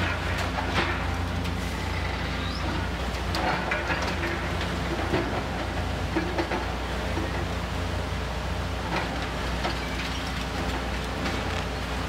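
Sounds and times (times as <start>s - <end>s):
excavator engine hum: 0.0s - 12.0s.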